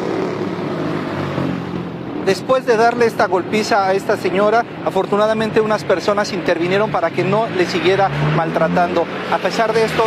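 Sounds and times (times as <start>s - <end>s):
street traffic passing: 0.0s - 10.0s.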